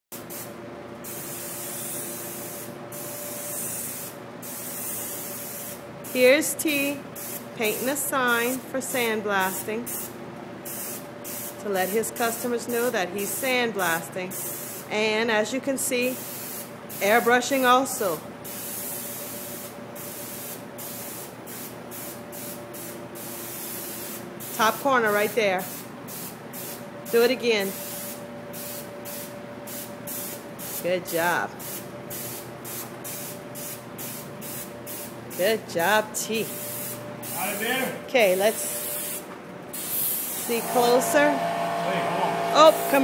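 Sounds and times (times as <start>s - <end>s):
airbrush spraying hiss: 0.1s - 6.3s, 7.2s - 10.1s, 10.7s - 13.5s, 14.3s - 14.9s, 16.2s - 17.7s, 18.5s - 24.7s, 25.6s - 26.8s, 27.7s - 30.8s, 31.6s - 35.4s, 36.4s - 37.9s, 38.5s - 43.0s.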